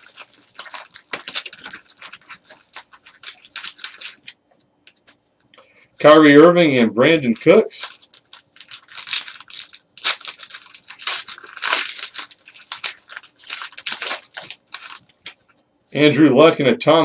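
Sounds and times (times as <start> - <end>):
foil wrapper crinkling and tearing: 0.0 - 5.2, 7.2 - 15.5.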